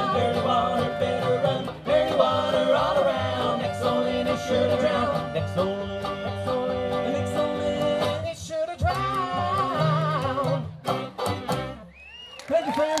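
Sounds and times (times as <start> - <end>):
acoustic bluegrass band playing: 0.0 - 12.0.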